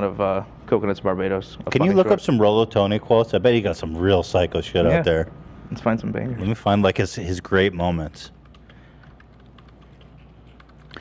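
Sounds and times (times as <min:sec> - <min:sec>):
faint keyboard typing: 0:07.5 - 0:11.0.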